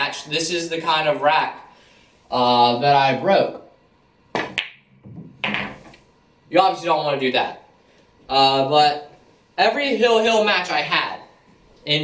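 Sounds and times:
pool balls clicking: 4.4 - 6.0.

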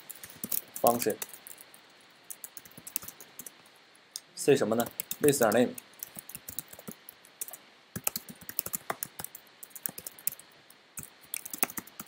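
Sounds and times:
typing on computer keyboard: 0.1 - 1.6, 2.3 - 3.5, 4.8 - 10.4, 11.0 - 12.0.

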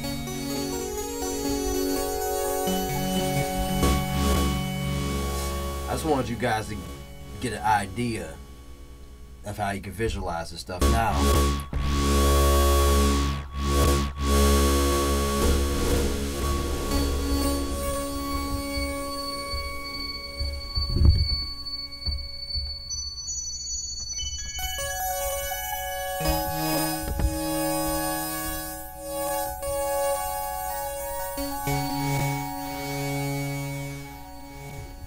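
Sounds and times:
synthesizer sustained tones: 0.0 - 9.2, 10.8 - 35.0.

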